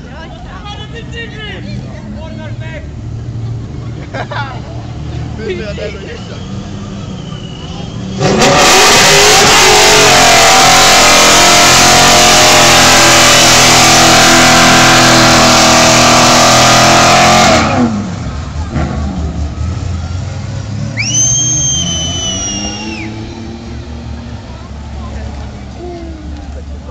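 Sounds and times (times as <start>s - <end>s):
vehicle rumble: 0.0s - 26.9s
high whistle-like tone: 6.2s - 8.2s, 20.9s - 23.6s
car engine at high revs: 8.0s - 26.9s.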